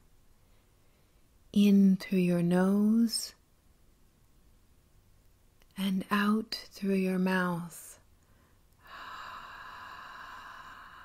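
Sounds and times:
woman exhaling slowly: 8.8s - 11.0s.

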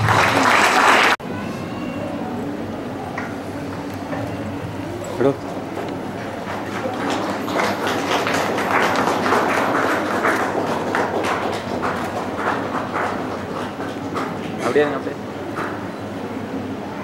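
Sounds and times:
audience applauding: 0.0s - 1.2s, 3.2s - 15.8s.

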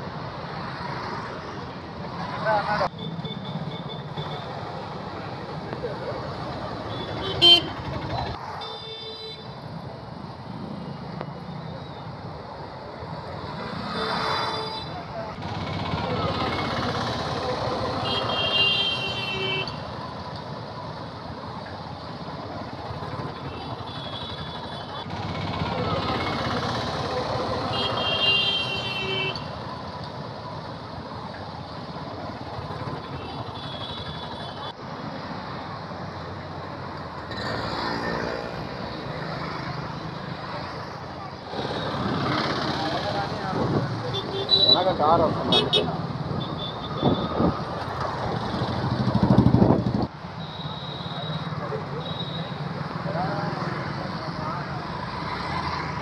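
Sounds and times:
motorcycles passing: 0.0s - 8.7s, 12.2s - 56.0s.

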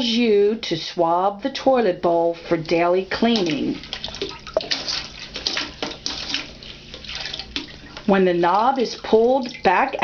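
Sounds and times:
toilet brush splashing water: 2.0s - 10.0s.

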